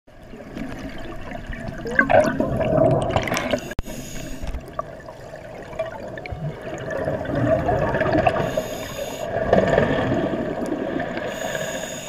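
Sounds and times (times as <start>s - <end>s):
underwater bubbling and gurgling: 0.1s - 12.0s.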